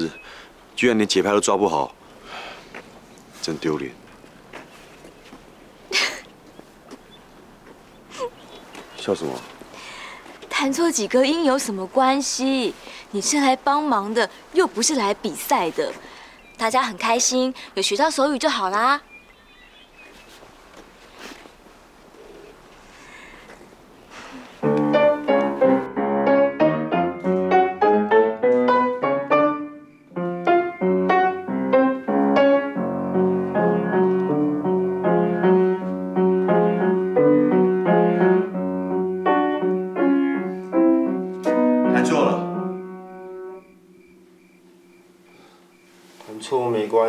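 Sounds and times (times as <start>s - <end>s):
faint room sound: 19.8s - 47.0s
classical piano piece: 24.6s - 47.0s.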